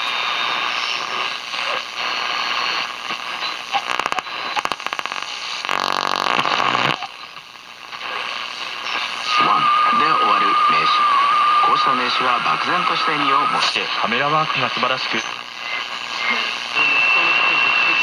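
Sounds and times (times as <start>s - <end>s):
radio crackles and clicks: 0.0s - 18.0s
radio static hiss: 0.0s - 18.0s
radio station: 0.0s - 18.0s.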